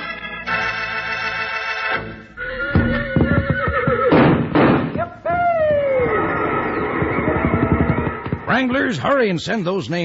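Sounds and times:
horse whinny: 2.4s - 4.3s
hoofbeat knocks: 2.7s - 6.1s, 6.8s - 8.8s.

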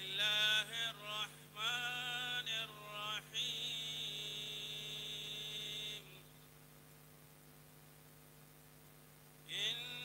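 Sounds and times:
man chanting through loudspeaker: 0.0s - 6.3s, 9.5s - 10.0s
electrical hum from sound system: 0.0s - 10.0s.

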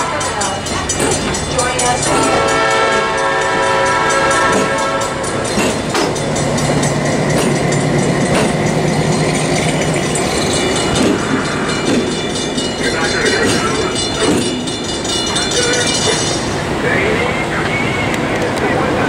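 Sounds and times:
train horn chord: 0.0s - 0.6s, 2.0s - 5.5s
diesel locomotive engine humming: 0.0s - 19.0s
wheel and rail noise: 0.0s - 19.0s.

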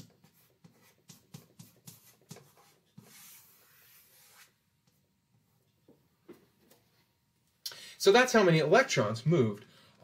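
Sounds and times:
chalk strokes on chalkboard: 0.0s - 4.6s.

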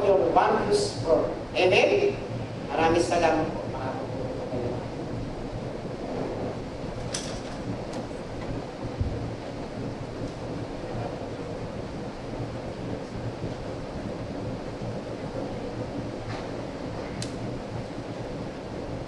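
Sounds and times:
electric fans humming: 0.0s - 19.0s
faint clicks: 17.0s - 17.4s.

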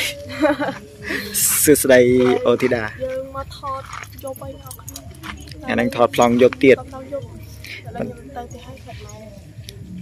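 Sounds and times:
keys jingling: 3.7s - 6.5s.

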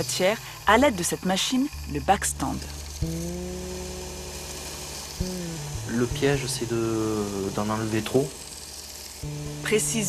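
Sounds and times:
belt grinder grinding: 0.0s - 10.0s.

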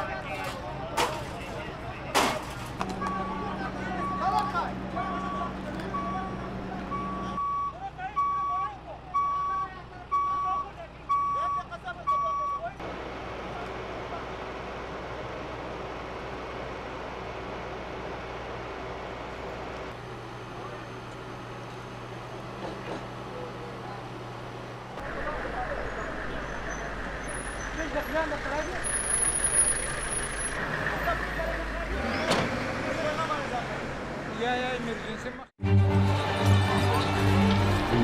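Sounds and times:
heavy vehicle engine running: 0.0s - 7.5s, 12.8s - 38.0s
reversing alarm beeping: 3.0s - 4.4s, 5.1s - 8.6s, 9.2s - 12.6s.

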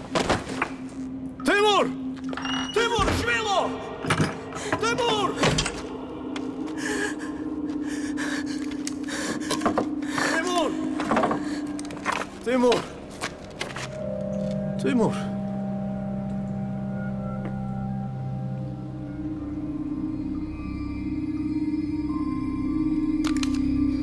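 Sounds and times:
low held film score tone: 0.0s - 24.0s
men crying out and groaning: 2.9s - 12.0s.

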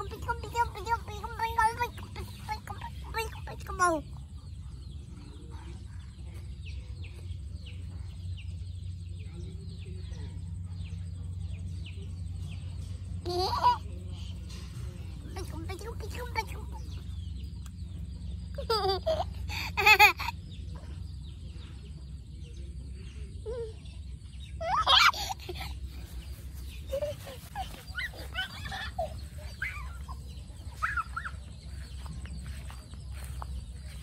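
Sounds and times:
chickens clucking and squawking: 0.0s - 9.8s, 10.6s - 34.0s.

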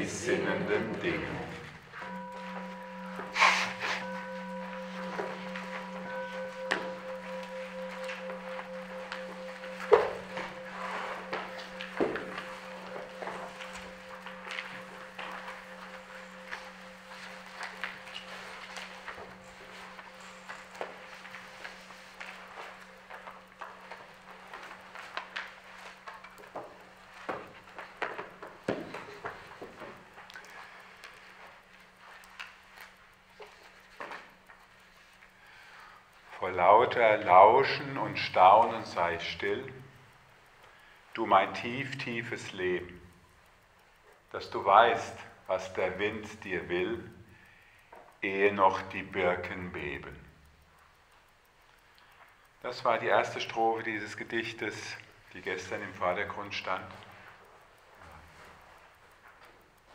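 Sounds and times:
singing bowl ringing: 0.0s - 33.1s
faint clicks and knocks: 4.0s - 59.9s.

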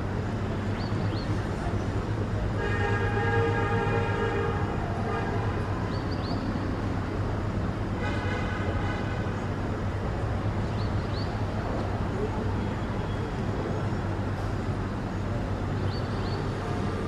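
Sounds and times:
low traffic rumble: 0.0s - 17.0s
long horn blasts: 2.6s - 5.7s.

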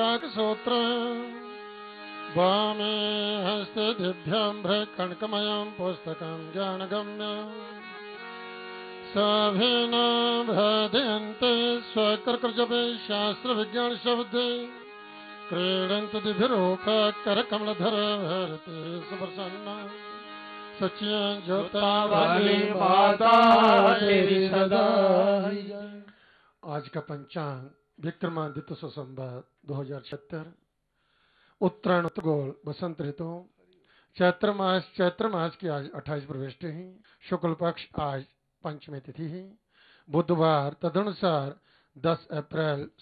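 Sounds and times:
person chanting: 2.2s - 7.9s, 9.1s - 14.8s, 15.5s - 20.2s, 20.8s - 26.1s.

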